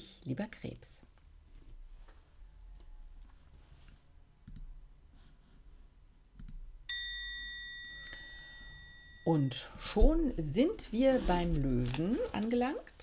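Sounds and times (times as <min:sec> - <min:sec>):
bright bell-like chime: 0:06.9 - 0:09.5.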